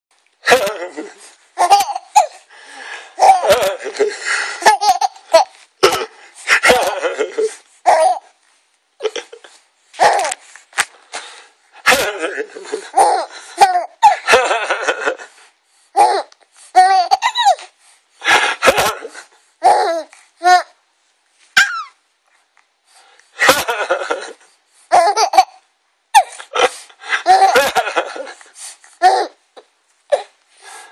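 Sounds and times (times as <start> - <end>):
baby laughing: 0.5 - 2.4, 3.2 - 8.2, 10.0 - 10.4, 11.9 - 15.1, 16.8 - 17.7, 23.4 - 25.6, 27.2 - 28.4.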